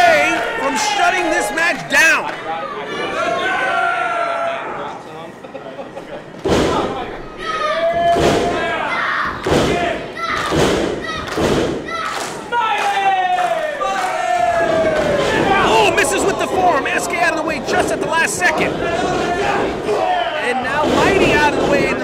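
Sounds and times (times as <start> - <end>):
people shouting: 7.3 - 22.0
heavy thuds: 8.0 - 12.0.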